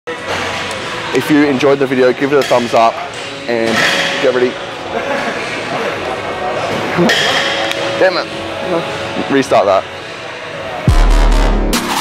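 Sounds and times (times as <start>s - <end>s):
faint music: 0.1s - 12.0s.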